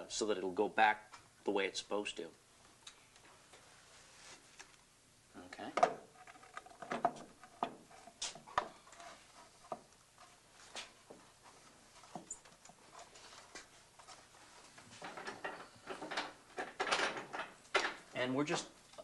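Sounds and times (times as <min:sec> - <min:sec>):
wood knocking and scraping on wood: 0:05.7 - 0:18.1.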